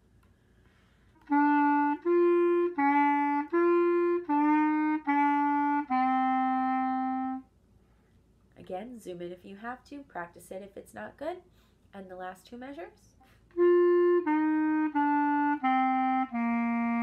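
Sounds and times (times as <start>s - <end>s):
clarinet playing: 1.2s - 7.5s, 13.4s - 17.0s.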